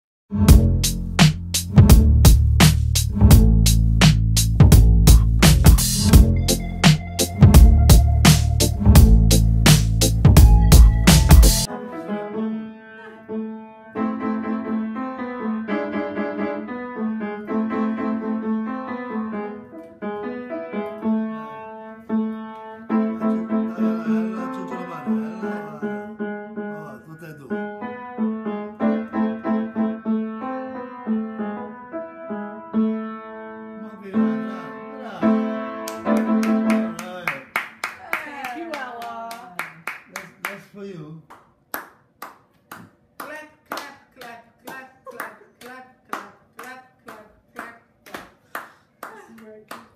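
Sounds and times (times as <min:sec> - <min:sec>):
child playing piano: 0:11.7 - 0:36.9
hand claps: 0:35.8 - 0:40.6, 0:41.2 - 0:49.9.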